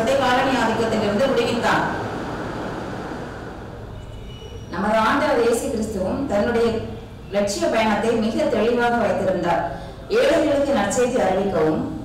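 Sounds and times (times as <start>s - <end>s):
woman speaking: 0.0s - 2.0s, 4.7s - 6.8s, 7.4s - 12.0s.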